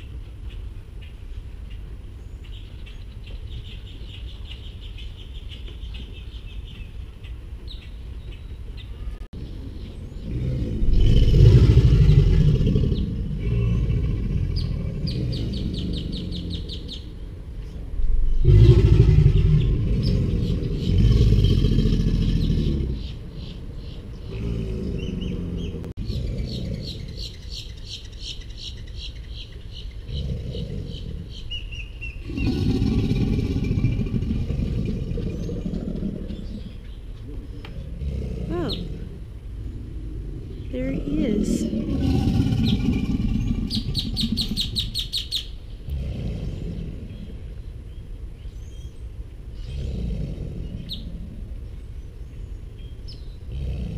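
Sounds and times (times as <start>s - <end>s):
birds chattering: 0.0s - 53.9s
alligators bellowing: 10.1s - 17.3s, 18.0s - 27.6s, 30.0s - 31.6s, 32.2s - 47.6s, 49.6s - 51.7s, 53.3s - 53.9s.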